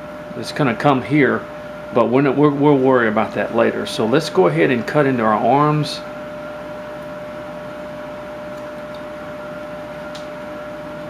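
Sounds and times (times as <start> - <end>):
hum and room hiss: 0.0 - 11.0.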